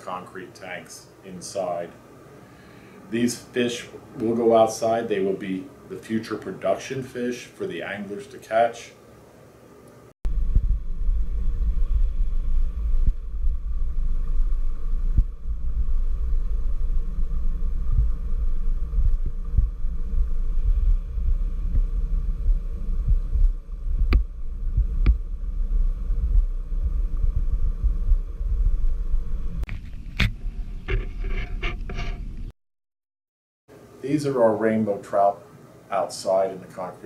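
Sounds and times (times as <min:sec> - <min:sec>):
underwater water rumble: 0:10.3 - 0:32.5.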